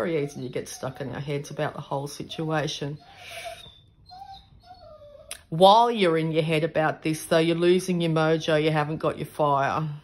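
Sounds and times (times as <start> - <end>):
animal whining calls: 0.0 - 5.6.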